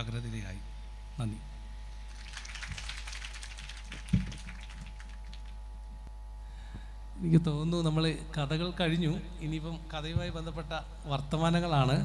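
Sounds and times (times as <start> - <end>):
audience applause: 2.1 - 5.6.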